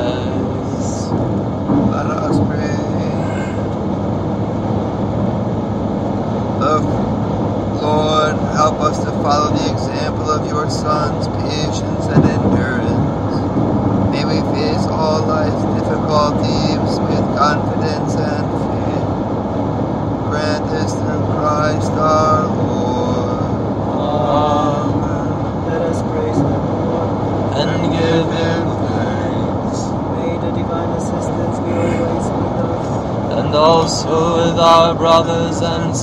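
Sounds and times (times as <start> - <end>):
voices speaking a prayer: 0.0 - 1.1, 2.0 - 3.6, 6.6 - 6.9, 7.8 - 13.4, 14.1 - 19.1, 20.3 - 36.0
steady low rumble: 0.0 - 36.0.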